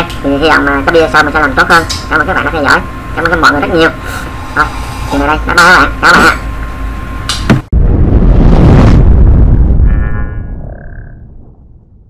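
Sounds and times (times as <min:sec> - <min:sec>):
deep boom rumble: 0:07.6 - 0:12.0.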